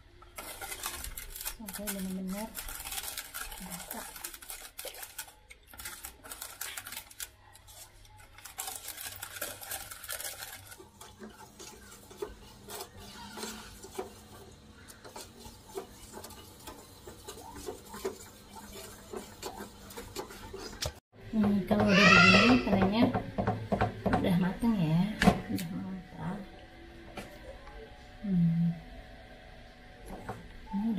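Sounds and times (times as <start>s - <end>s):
ladle stirring in a saucepan: 0.1s - 24.0s
ladle scraping and tapping pan: 10.8s - 21.0s.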